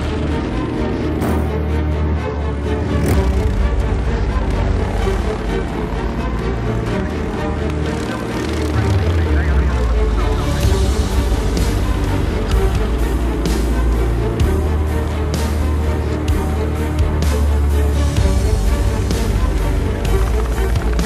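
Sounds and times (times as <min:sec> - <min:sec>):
lawnmower engines buzzing: 0:00.0 - 0:21.0.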